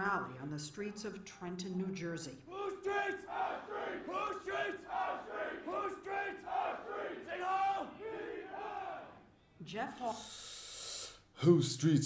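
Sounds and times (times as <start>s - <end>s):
crowd of men chanting: 2.5s - 9.3s.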